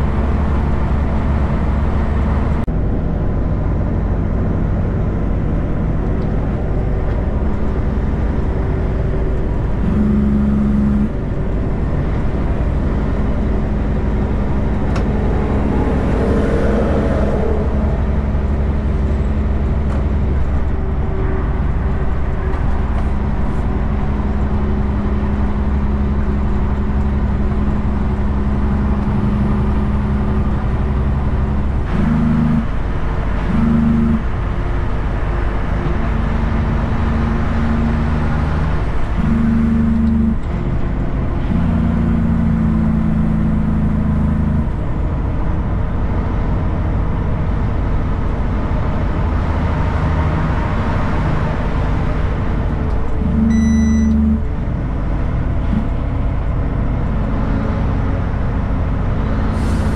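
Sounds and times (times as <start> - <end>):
diesel engine running: 0.0 - 59.9
tyre and road noise: 0.0 - 59.9.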